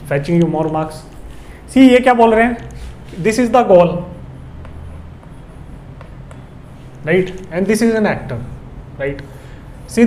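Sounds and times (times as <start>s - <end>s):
low room hum: 0.0s - 10.0s
chalk tapping and scraping on blackboard: 2.2s - 10.0s.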